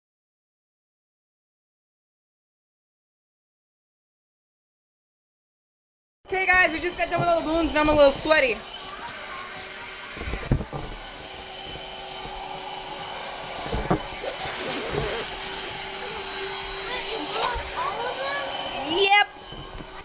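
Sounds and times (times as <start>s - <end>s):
whirring motor: 6.4s - 20.0s.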